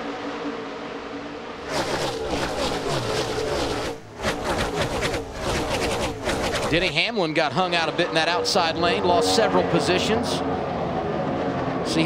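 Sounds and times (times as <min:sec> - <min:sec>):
race car engines passing: 0:00.0 - 0:12.0.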